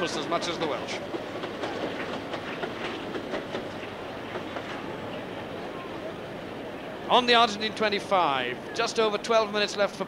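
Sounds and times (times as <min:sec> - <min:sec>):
steady recording hiss: 0:02.6 - 0:10.0.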